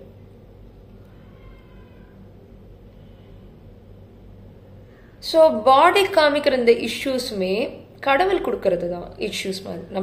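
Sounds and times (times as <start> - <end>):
low room hum: 0.0 - 10.0
faint high-pitched animal call: 1.0 - 2.3.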